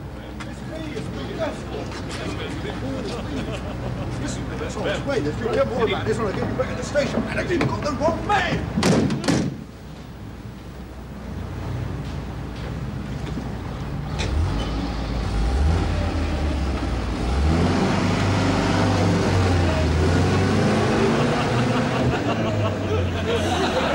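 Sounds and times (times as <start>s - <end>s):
van engine running and revving: 13.7s - 22.8s.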